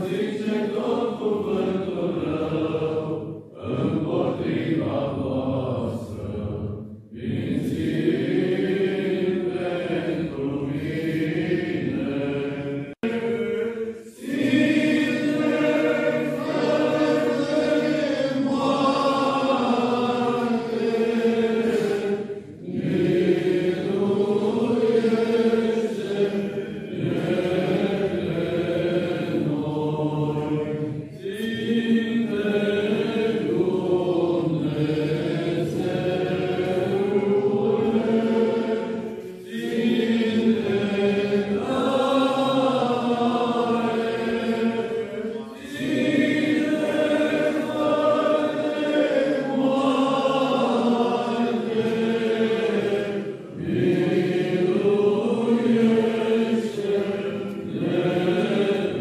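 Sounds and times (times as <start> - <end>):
voices singing liturgical chant: 0.0 - 59.0.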